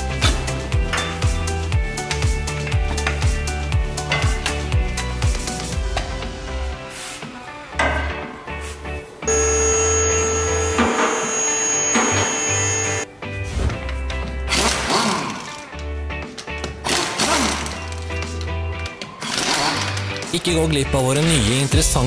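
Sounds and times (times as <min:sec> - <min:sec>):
background music with steady beat: 0:00.0 - 0:22.0.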